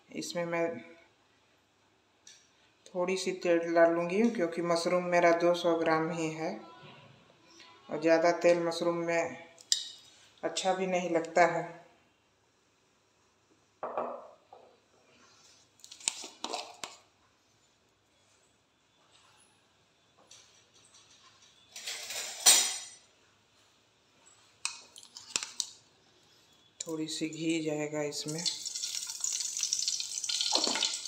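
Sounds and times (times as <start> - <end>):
kitchen utensils clinking: 20.4 - 23.1, 28.4 - 31.0.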